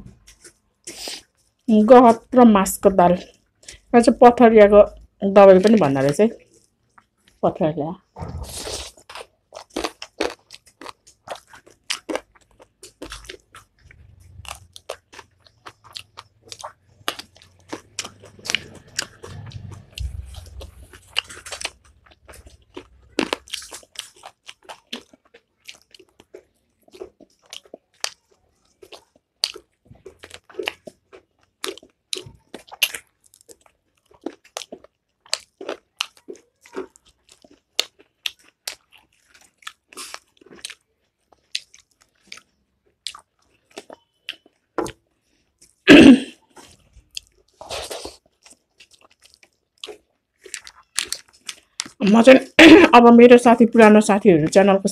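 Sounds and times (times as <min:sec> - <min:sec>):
crunchy bites and chewing: 0:08.2 - 0:45.8, 0:46.4 - 0:52.0
low rumble: 0:19.4 - 0:20.9.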